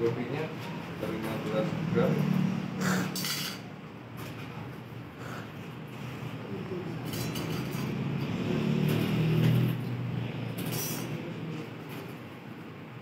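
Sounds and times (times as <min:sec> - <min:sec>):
passing vehicle engine hum: 0:01.1 - 0:03.2, 0:06.1 - 0:12.4.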